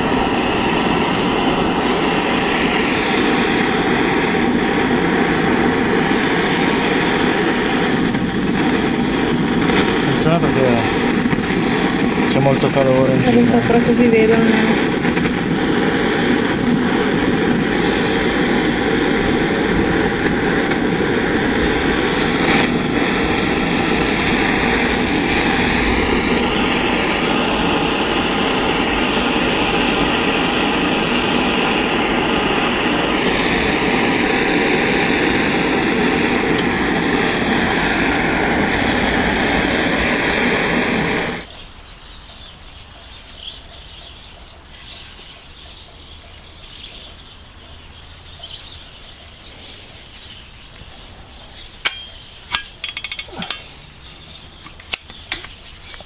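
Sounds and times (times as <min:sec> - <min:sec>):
torch flame roaring: 0:00.0 - 0:41.5.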